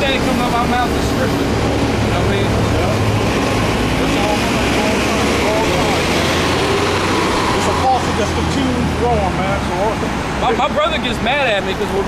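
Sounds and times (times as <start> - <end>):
bus engine humming: 0.0 - 12.0
faint voices: 0.0 - 12.0.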